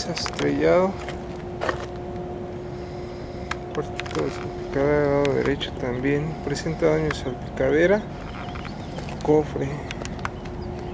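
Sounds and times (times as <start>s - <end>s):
steady low hum: 0.0s - 10.9s.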